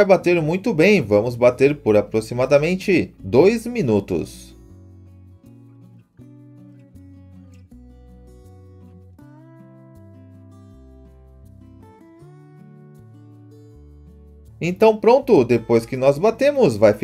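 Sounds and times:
bass line: 0.0 - 5.4
guitar background music: 0.0 - 17.0.

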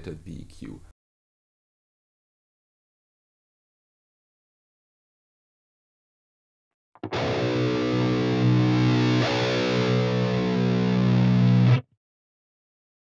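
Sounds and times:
distorted electric guitar chord: 7.0 - 11.8.

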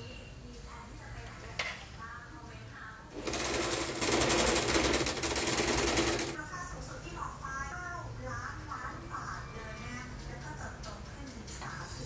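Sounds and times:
electric sewing machine stitching: 3.1 - 6.4.

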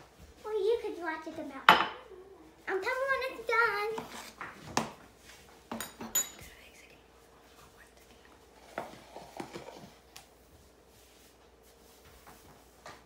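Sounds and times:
dishes and cutlery clinking: 1.7 - 2.1, 5.7 - 6.6.

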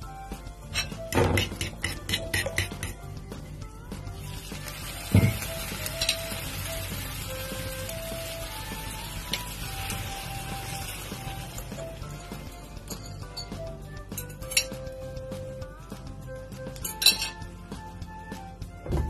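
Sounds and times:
background music: 0.0 - 19.0
food sizzling in pan: 4.1 - 12.9
fork clinking against ceramic bowl: 16.8 - 17.4.

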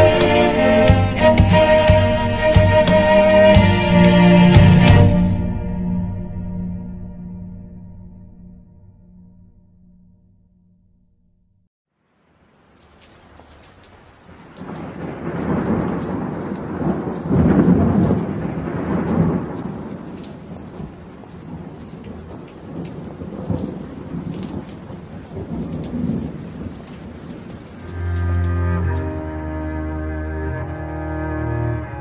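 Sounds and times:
steady rain: 0.0 - 5.1, 11.9 - 32.0
rumbling thunder: 14.5 - 29.0.

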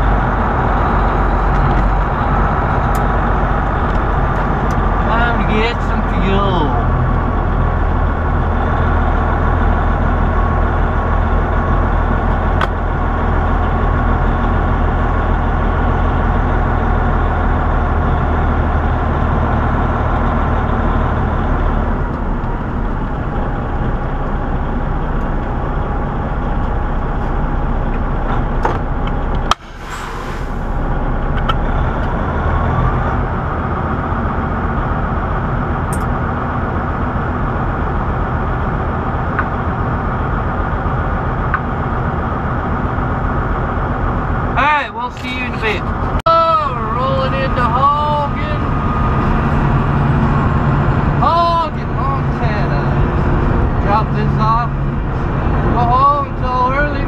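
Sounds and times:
diesel truck engine running: 0.0 - 57.0
air hiss: 29.5 - 30.8.

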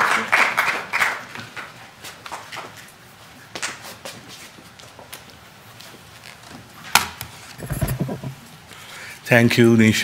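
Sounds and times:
microphone handling bumps: 7.6 - 8.4.

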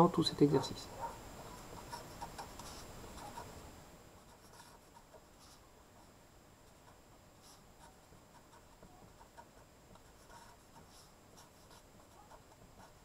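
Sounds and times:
pen scratching on paper: 1.4 - 3.6, 4.2 - 13.0.

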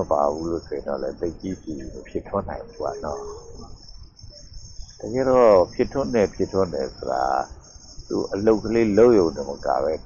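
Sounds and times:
man speaking: 0.0 - 3.7, 5.0 - 7.5, 8.1 - 10.0
high-pitched whine: 0.0 - 10.0.

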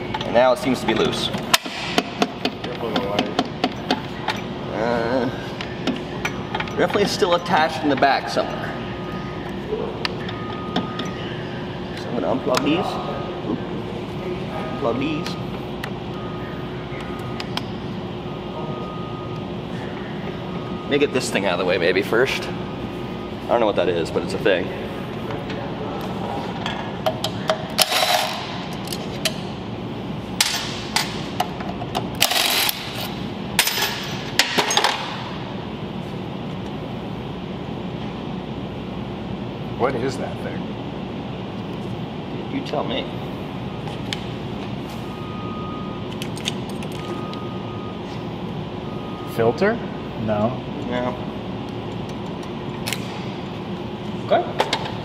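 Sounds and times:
steady background hum: 0.0 - 55.0
faint whine: 4.0 - 27.0, 35.2 - 52.6.

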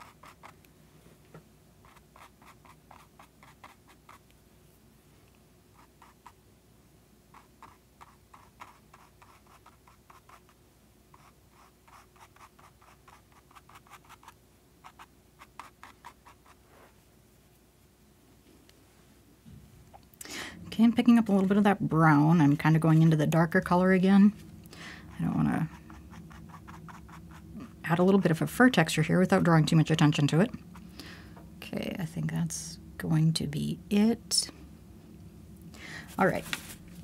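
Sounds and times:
paintbrush scratching on canvas: 0.0 - 0.6, 1.8 - 4.3, 5.7 - 6.4, 7.3 - 17.0, 25.1 - 27.7.

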